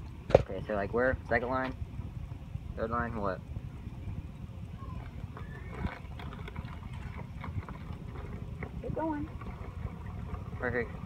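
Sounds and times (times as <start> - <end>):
wind on microphone: 0.0 - 11.0
liquid glugging from bottle: 4.9 - 11.0.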